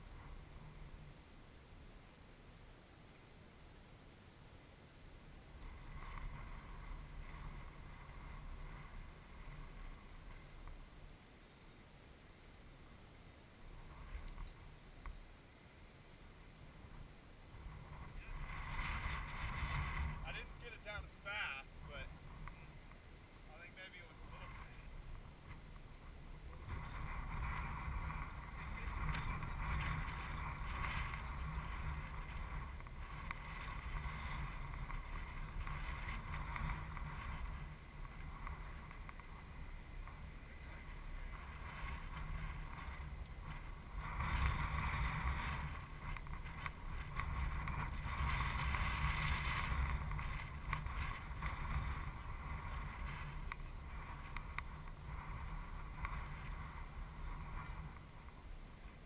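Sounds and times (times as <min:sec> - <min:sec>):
wind buffeting microphone: 0:16.6 - 0:58.7.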